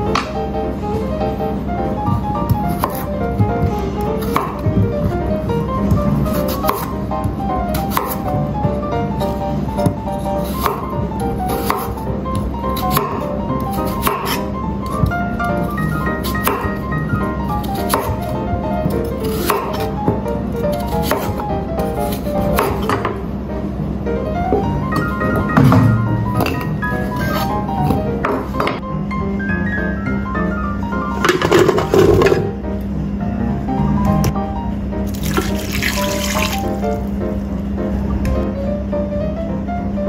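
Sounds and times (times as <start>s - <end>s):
background music: 0.0s - 40.0s
knife cutting on wooden board: 2.5s - 4.7s, 6.0s - 6.9s, 12.7s - 15.0s, 26.4s - 28.5s
water pouring into a pot: 35.1s - 36.8s.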